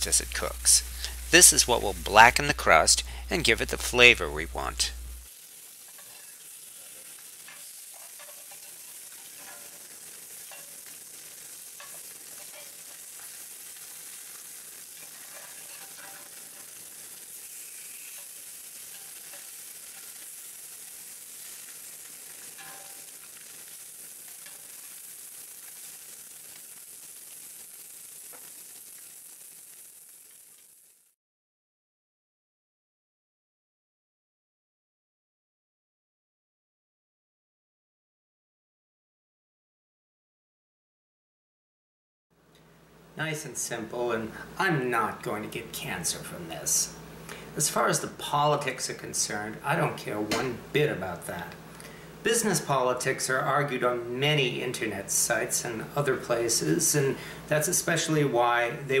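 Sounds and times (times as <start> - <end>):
fish sizzling in a skillet: 0.0 - 31.2, 46.1 - 48.2, 54.4 - 58.6.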